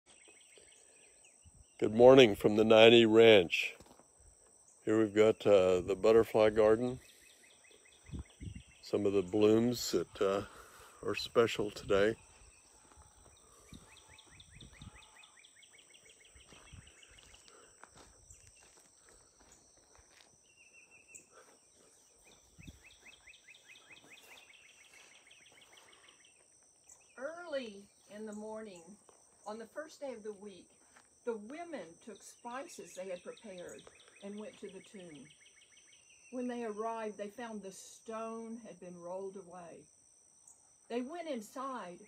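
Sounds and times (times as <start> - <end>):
soft bird chirps: 0.1 - 1.9, 6.9 - 11.0, 12.0 - 29.6, 32.0 - 36.6
high insect drone: 0.2 - 42.0.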